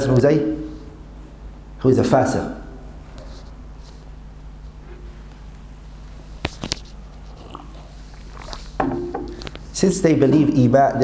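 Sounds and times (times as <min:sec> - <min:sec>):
man sipping and swallowing: 0:06.6 - 0:09.7
mug set down on table: 0:08.8 - 0:09.5.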